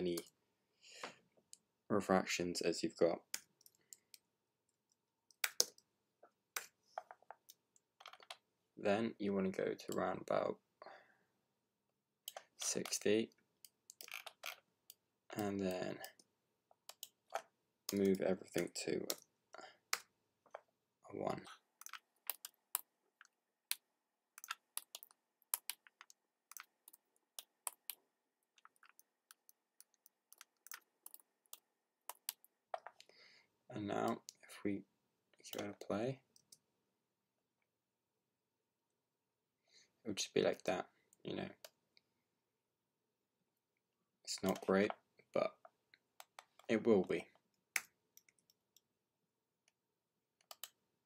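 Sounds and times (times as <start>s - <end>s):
mouse and keyboard clicks: 21.4s - 22.9s, 24.4s - 28.0s, 50.4s - 50.8s.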